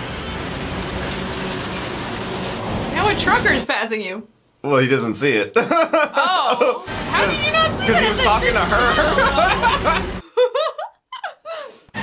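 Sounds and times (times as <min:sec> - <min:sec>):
road and wind noise: 0:00.0 - 0:03.6
truck engine passing: 0:00.0 - 0:03.6, 0:06.9 - 0:10.2.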